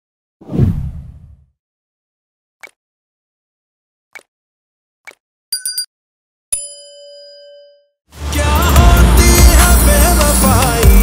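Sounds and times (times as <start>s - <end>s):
notification bell chime: 6.6s - 7.9s.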